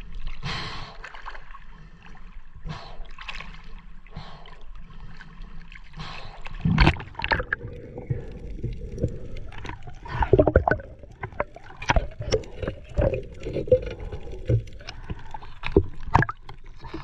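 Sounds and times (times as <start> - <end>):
muffled underwater clicks and knocks: 8.4 - 17.0.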